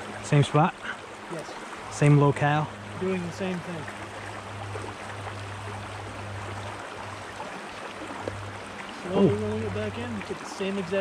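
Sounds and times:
low steady hum: 0.0 - 11.0
stream rushing over rocks: 0.0 - 11.0.

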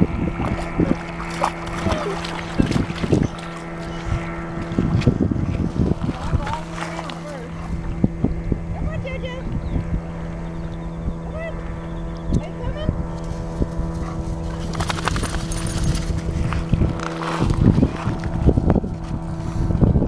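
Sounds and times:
steady low hum: 0.0 - 20.0
wind buffeting microphone: 0.0 - 20.0.

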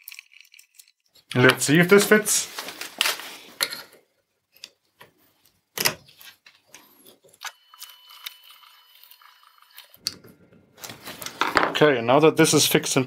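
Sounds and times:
clicks and clinks of small parts: 0.0 - 1.4.

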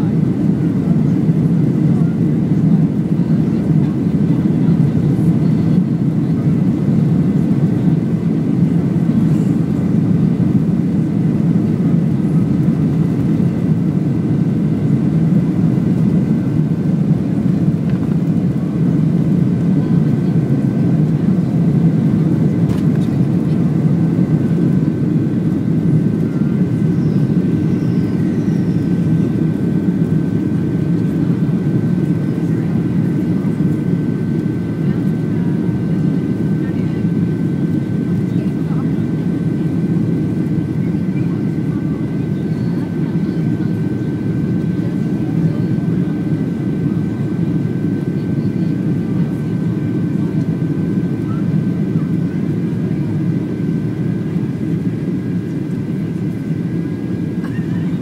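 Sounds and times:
jet engines roaring and whining: 0.0 - 58.0.

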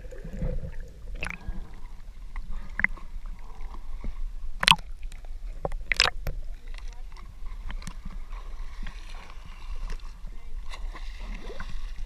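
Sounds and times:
water splash: 0.0 - 1.8, 4.6 - 4.9, 5.8 - 6.3
small waves lapping: 5.8 - 12.0.

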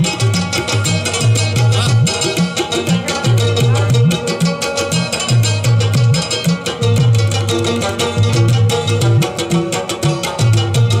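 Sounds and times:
hand drum beating: 0.0 - 11.0
melodic folk instrument: 0.0 - 11.0.

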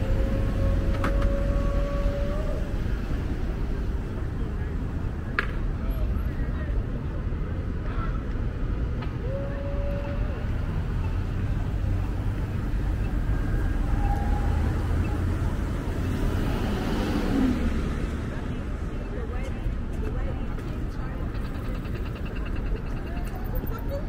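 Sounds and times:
cars passing and idling: 0.0 - 24.0
faint voices of passers-by: 0.0 - 24.0.

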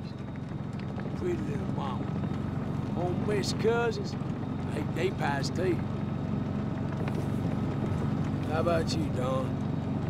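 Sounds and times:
tank engine droning: 0.0 - 10.0.

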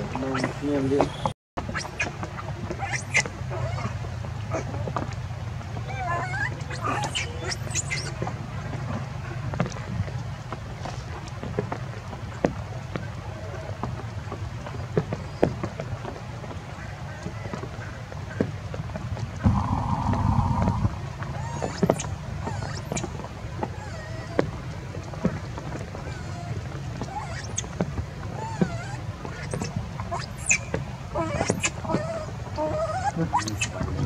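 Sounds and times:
monkey calls: 0.0 - 2.1, 2.8 - 4.7, 5.8 - 8.2, 19.4 - 23.2, 26.0 - 27.7, 28.4 - 34.0.

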